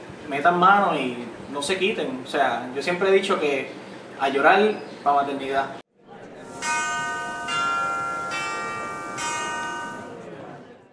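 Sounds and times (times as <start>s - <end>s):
bell-chime jingle: 6.5s - 10.2s.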